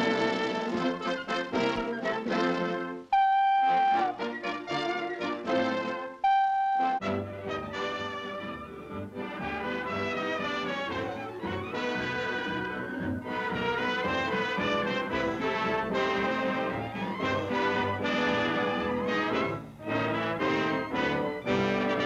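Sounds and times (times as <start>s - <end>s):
brass orchestral fanfare: 0.0s - 22.0s.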